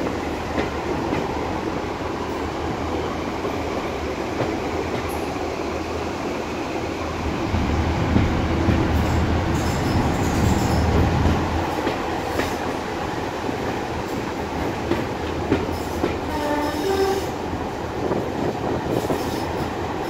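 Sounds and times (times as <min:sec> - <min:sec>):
rail-joint clicks: 0:14.0 - 0:16.4.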